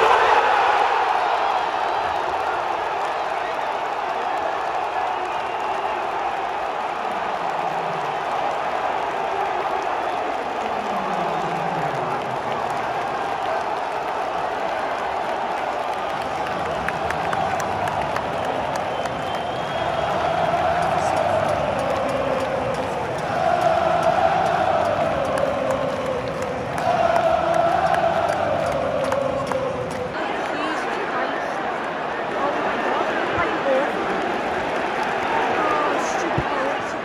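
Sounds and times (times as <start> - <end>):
stadium crowd cheering: 0.0 - 37.0
crowd singing: 18.9 - 31.6.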